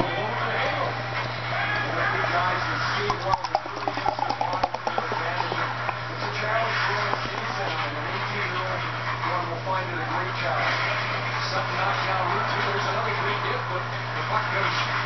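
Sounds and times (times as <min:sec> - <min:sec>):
steady low hum: 0:00.0 - 0:12.0
beer pouring into a glass: 0:01.9 - 0:07.7
can glugging: 0:03.0 - 0:07.8.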